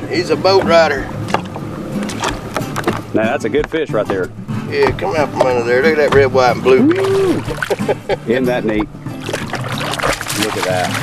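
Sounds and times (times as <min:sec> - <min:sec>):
boat motor humming: 0:00.0 - 0:11.0
water noise: 0:00.0 - 0:11.0
wind: 0:00.0 - 0:11.0.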